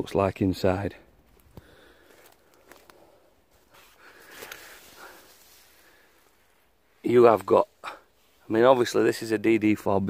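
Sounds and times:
footsteps in dry leaves: 1.3s - 6.5s.

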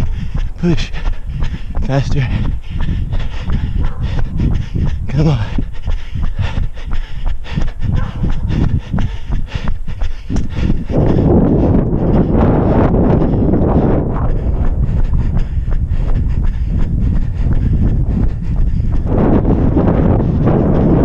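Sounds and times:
running footsteps on asphalt: 0.0s - 21.0s
wind noise on microphone: 0.0s - 21.0s.

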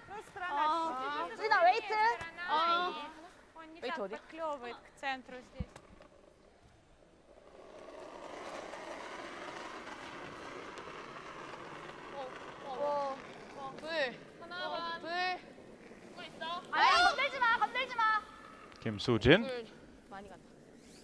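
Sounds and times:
curling stone sliding on ice: 0.1s - 21.0s
people shouting calls: 16.7s - 18.0s.

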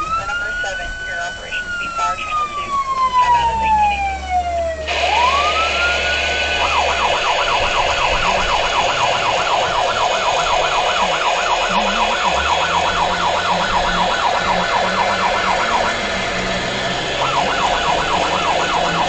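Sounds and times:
electronic siren wailing and yelping: 0.0s - 19.0s.

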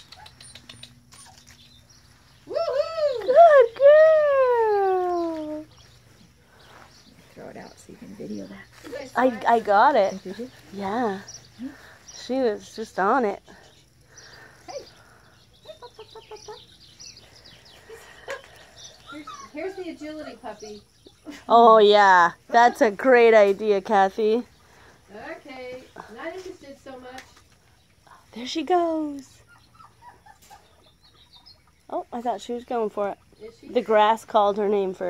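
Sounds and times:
small birds chirping: 0.0s - 35.0s
faint bird calls: 13.6s - 21.4s.

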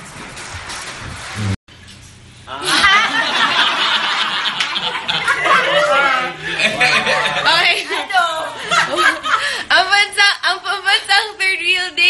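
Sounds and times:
group of people laughing: 2.5s - 9.6s.

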